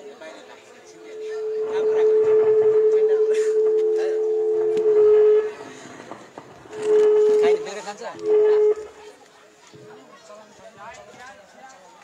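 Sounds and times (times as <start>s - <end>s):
voices: 0.0s - 12.0s
horn sounding low notes: 0.9s - 8.9s.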